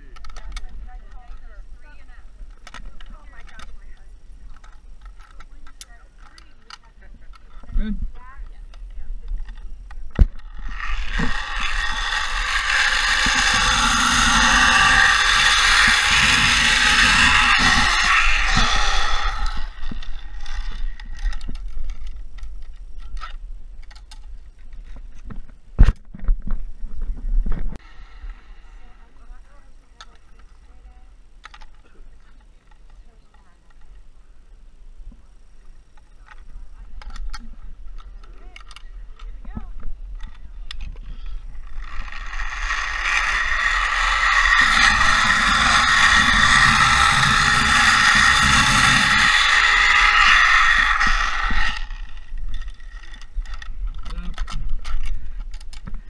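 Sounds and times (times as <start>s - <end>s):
zipline pulleys whirring on cable: 10.3s - 24.0s, 40.1s - 55.9s.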